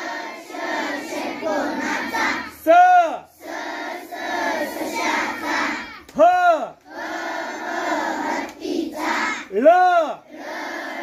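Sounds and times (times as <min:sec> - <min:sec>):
children chanting in unison: 0:00.0 - 0:11.0.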